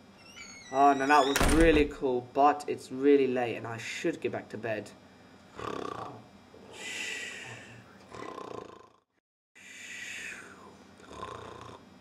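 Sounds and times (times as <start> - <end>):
person snoring: 5.5 - 11.8.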